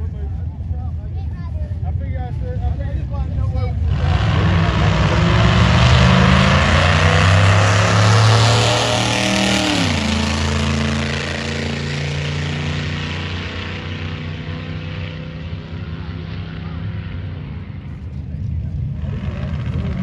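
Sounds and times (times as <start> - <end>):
drag car engine at full throttle: 1.7 - 20.0.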